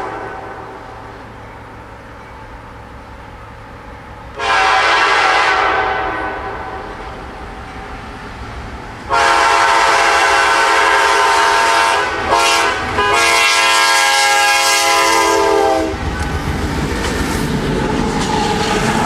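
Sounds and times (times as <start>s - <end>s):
locomotive air horn: 0.0s - 1.0s, 4.3s - 7.0s, 9.1s - 16.0s
train rumble: 0.0s - 19.0s.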